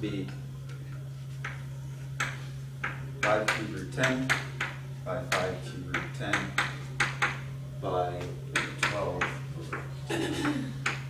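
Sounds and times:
steady low hum: 0.0s - 11.0s
chalk tapping and scraping on blackboard: 1.3s - 1.6s, 2.2s - 7.4s.

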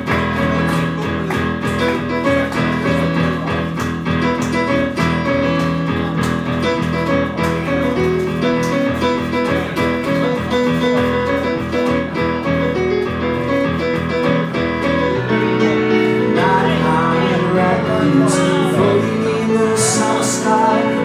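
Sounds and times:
piano chords: 0.0s - 21.0s.

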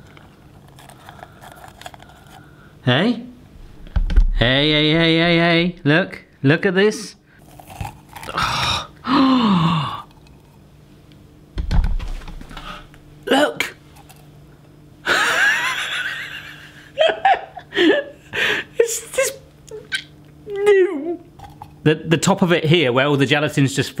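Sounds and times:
low thump: 3.7s - 4.5s
man exclaiming and gasping: 8.4s - 10.1s.

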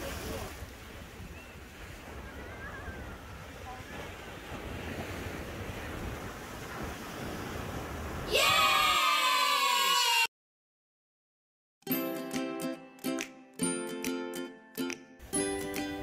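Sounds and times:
wind buffeting microphone: 0.0s - 8.4s
ocean surf breaking: 0.0s - 10.0s.

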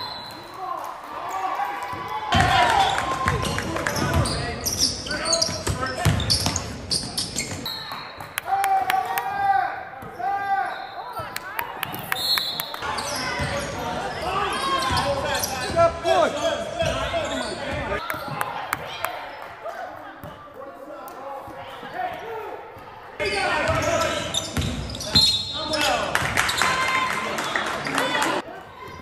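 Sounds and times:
voices of players and spectators: 0.0s - 29.0s
shoes squeaking: 4.0s - 8.2s.

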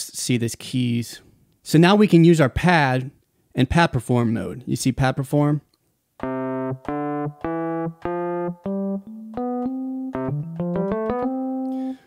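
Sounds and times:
electric piano notes: 6.2s - 12.0s.

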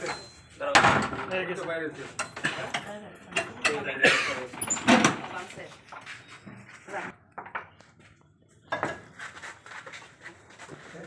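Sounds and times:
people talking: 0.0s - 5.8s.

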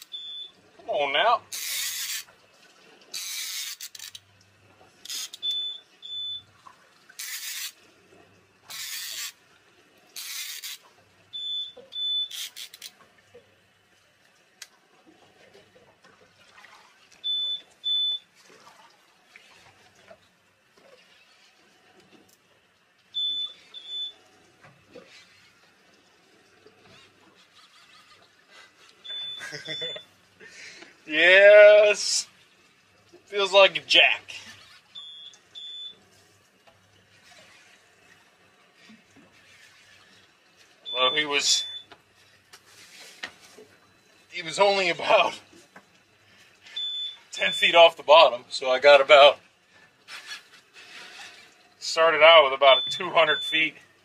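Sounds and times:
electronic alarm double beep: 0.0s - 0.6s, 5.4s - 6.5s, 11.3s - 12.4s, 17.2s - 18.2s, 23.2s - 24.2s, 29.0s - 30.0s, 35.0s - 36.0s, 40.9s - 41.9s, 46.8s - 47.8s, 52.6s - 53.7s
bursts of hiss-like noise: 7.2s - 7.8s.

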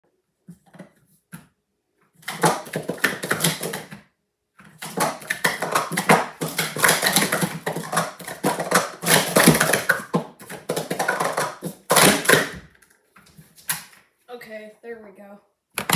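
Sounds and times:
plastic cups clattering: 2.2s - 4.0s, 4.6s - 12.9s.

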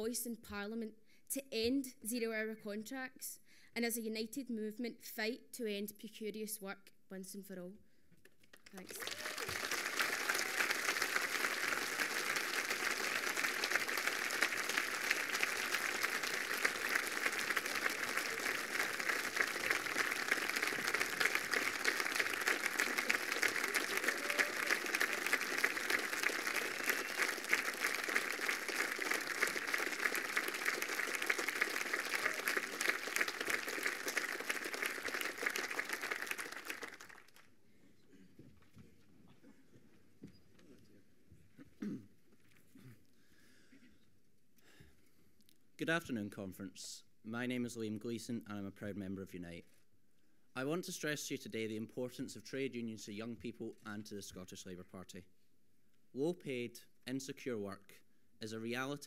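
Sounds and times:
audience applauding: 8.6s - 37.5s.

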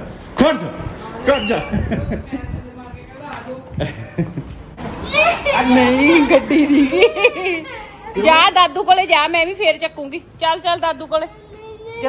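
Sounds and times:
toddler babbling and squealing: 5.0s - 8.4s.

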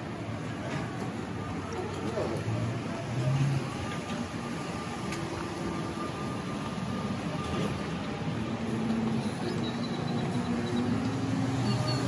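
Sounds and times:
outdoor traffic noise: 0.0s - 12.0s.

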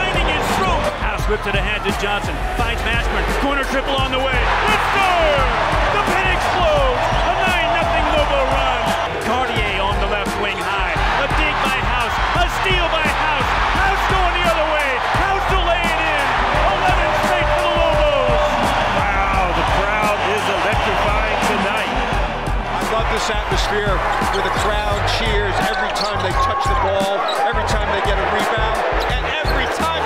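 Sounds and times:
crowd cheering: 0.0s - 30.0s.

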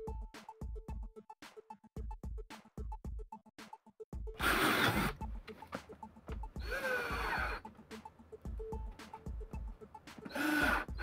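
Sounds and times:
music with steady beat: 0.0s - 11.0s
cordless drill boring into wood: 4.4s - 5.2s, 6.6s - 7.6s, 10.3s - 11.0s.

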